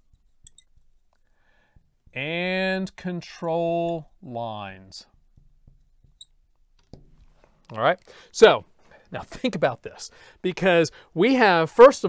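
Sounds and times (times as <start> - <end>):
marker squeaking on glass: 0.0 - 1.4, 2.1 - 6.8.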